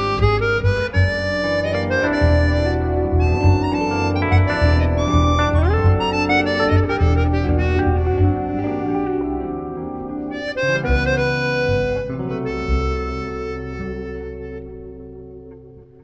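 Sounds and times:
harmonica melody: 0.0 - 15.6
bass: 0.0 - 16.0
jazz guitar: 0.0 - 16.0.

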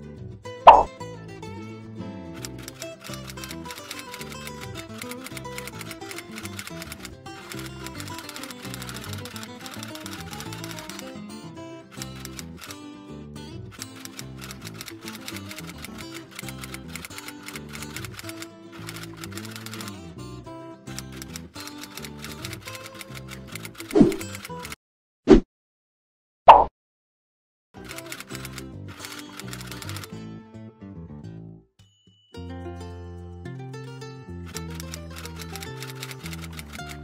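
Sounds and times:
light guitar music: 0.0 - 24.8, 27.8 - 31.7, 32.3 - 37.0
cartoon plop sound effect: 0.7 - 0.9, 26.5 - 26.7
typewriter key clicking: 2.4 - 11.1, 21.1 - 24.8.

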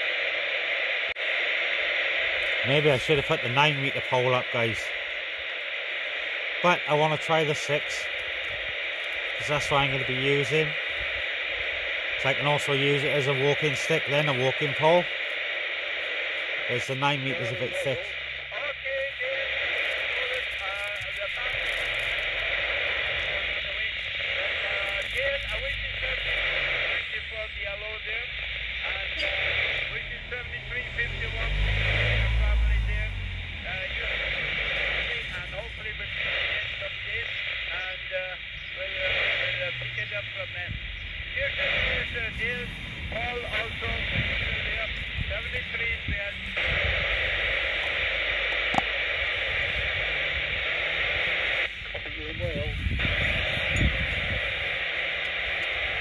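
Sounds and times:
garbled radio voices: 0.0 - 56.0
radio static hiss: 0.0 - 56.0.

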